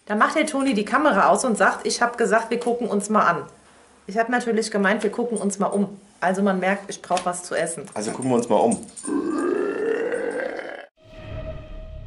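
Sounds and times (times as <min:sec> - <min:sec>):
drawn-out vocal sound: 0:09.0 - 0:11.0.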